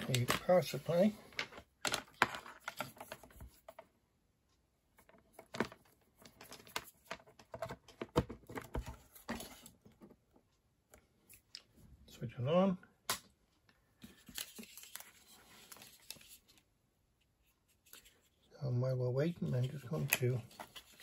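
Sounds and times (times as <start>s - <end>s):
hands handling plastic case: 0.0s - 3.9s, 5.0s - 10.2s, 19.3s - 21.0s.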